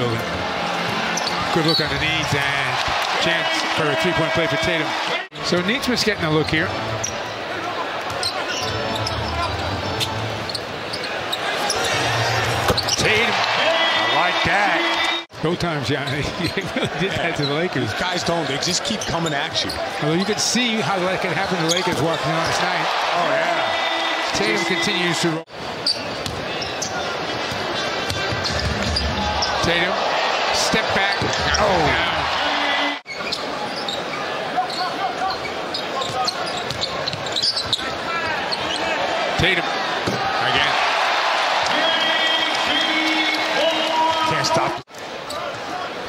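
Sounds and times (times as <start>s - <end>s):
murmur of arena crowd: 0.0s - 46.0s.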